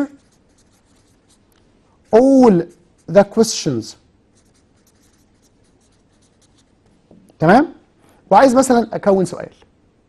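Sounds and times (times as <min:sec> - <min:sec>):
marker pen writing on board: 0:00.0 - 0:01.5, 0:04.3 - 0:07.2.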